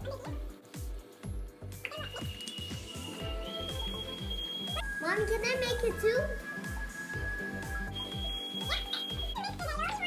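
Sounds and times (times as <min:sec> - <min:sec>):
high held tone: 0:01.9 - 0:09.4.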